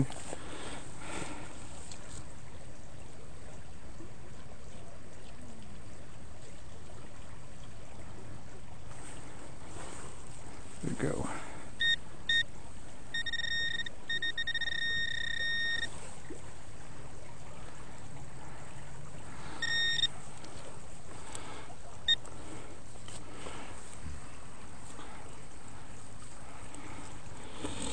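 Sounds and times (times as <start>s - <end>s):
pinpointer high beeping tone: 11.8s - 12.5s, 13.1s - 15.9s, 19.6s - 20.1s.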